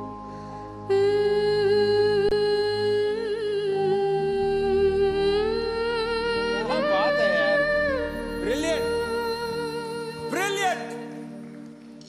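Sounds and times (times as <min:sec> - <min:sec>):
soft instrumental accompaniment: 0:00.0 - 0:12.0
girl singing into microphone: 0:00.9 - 0:10.3.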